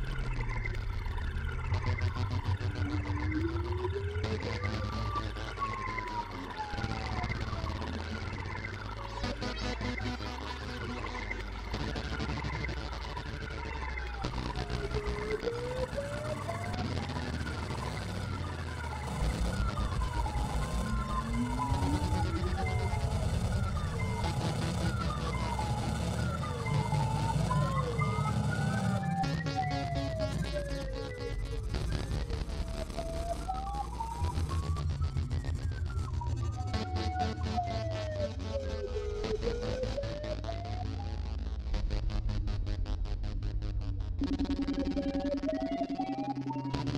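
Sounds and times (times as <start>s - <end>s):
low synth bass: 0.0s - 46.9s
gliding synth tones: 8.3s - 41.9s
high ticking rhythm: 14.8s - 34.6s.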